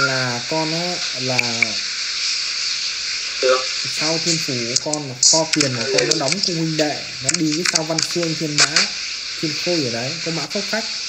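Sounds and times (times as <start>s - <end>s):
steady background hiss: 0.0s - 11.0s
short spoken word: 3.4s - 8.9s.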